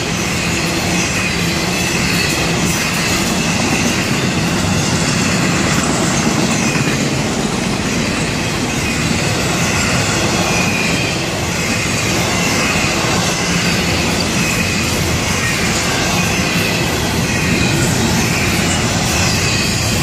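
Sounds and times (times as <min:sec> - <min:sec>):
freight train wheels rumbling: 0:00.0 - 0:20.0
high wheel squeal: 0:00.0 - 0:20.0.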